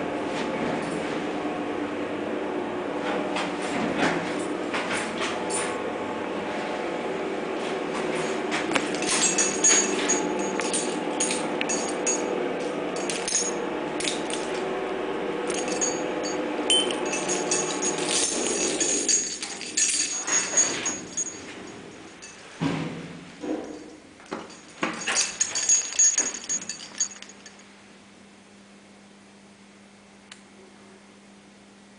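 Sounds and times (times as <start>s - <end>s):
elevator motor humming: 0.0s - 27.7s
light rattling: 8.8s - 12.3s, 15.4s - 22.6s, 23.6s - 27.6s.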